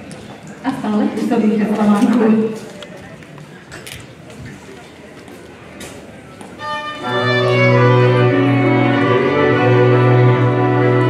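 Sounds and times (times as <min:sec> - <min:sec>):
cimbalom band playing: 0:06.6 - 0:11.0
fiddle: 0:06.6 - 0:11.0
deep double bass: 0:06.9 - 0:11.0.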